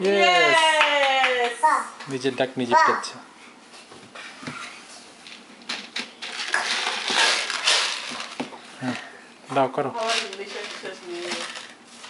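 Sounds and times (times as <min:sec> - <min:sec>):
plastic scraping and rubbing: 0:05.7 - 0:08.5, 0:10.0 - 0:12.0.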